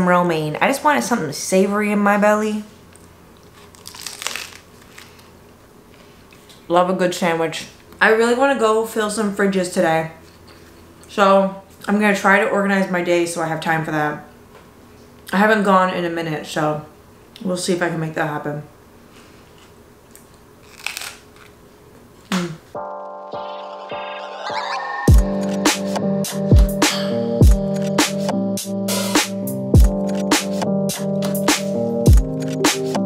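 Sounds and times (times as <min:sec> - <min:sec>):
sandwich bite crunch: 0:03.4 - 0:05.3, 0:20.3 - 0:21.6.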